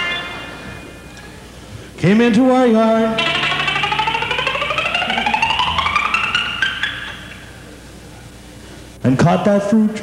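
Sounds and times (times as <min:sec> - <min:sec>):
low held bass note: 0:03.0 - 0:07.8
rapid notes sliding upward: 0:03.2 - 0:07.8.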